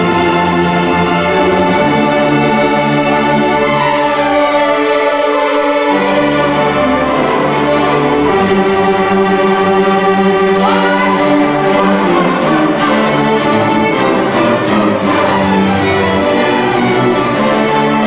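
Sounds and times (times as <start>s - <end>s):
string orchestra playing chords: 0.0s - 18.0s.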